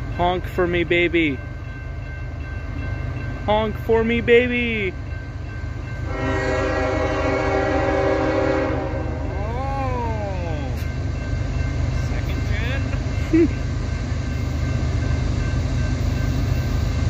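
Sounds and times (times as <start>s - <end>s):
diesel freight train rumble: 0.0s - 17.0s
locomotive air horn blast: 6.1s - 9.4s.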